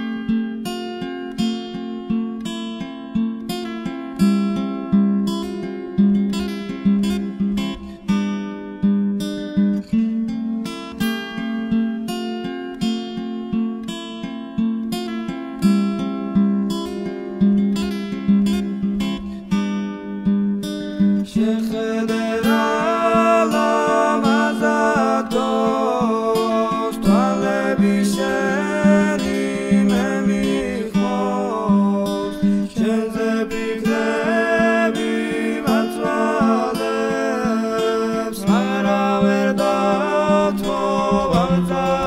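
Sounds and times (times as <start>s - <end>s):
acoustic guitar strumming: 0.0s - 42.0s.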